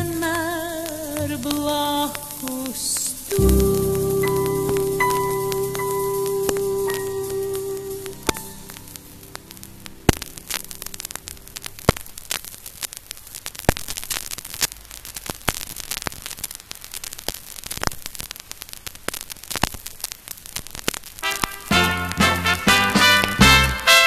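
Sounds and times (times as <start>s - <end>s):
vinyl crackle and pops: 0.0s - 24.0s.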